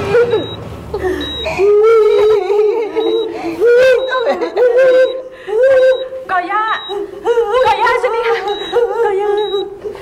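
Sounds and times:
woman wailing in distress: 0.0s - 6.2s
high steady electronic tone: 1.2s - 9.8s.

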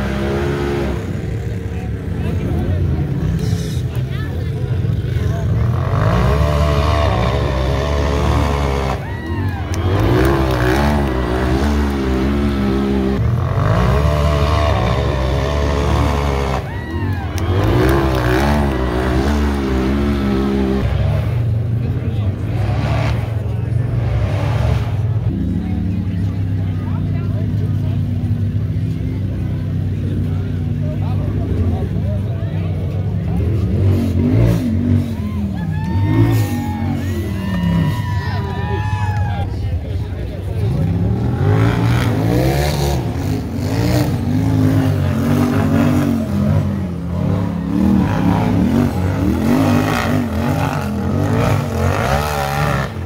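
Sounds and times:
engines revving hard: 0.0s - 53.0s.

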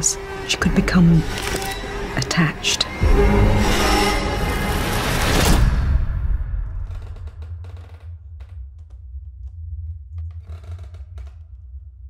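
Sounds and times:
low suspense drone: 0.0s - 12.0s.

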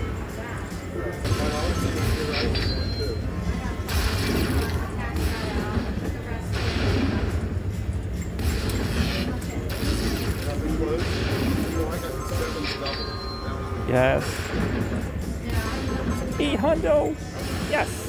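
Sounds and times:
slot machine clicking and ratcheting: 7.6s - 18.0s.

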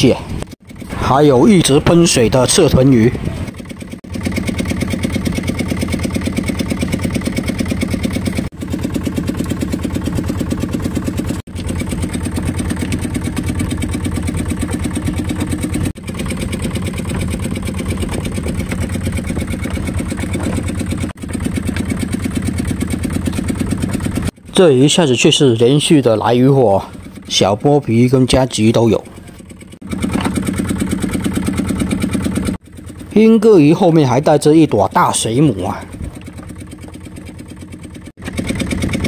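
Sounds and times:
boat engine running: 0.0s - 39.0s.

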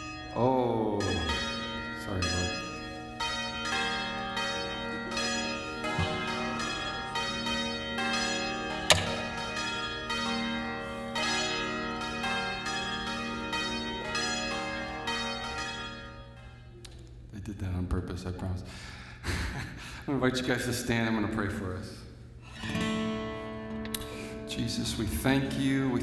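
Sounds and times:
bells ringing: 0.0s - 16.8s, 22.8s - 26.0s.

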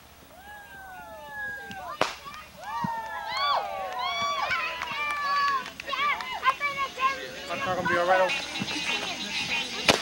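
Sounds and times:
firework whistling: 5.4s - 10.0s.

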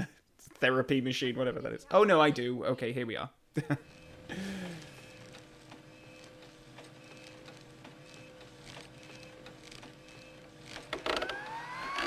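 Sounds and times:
motor hum: 3.7s - 12.0s
machine whine rising in pitch: 10.9s - 12.0s.

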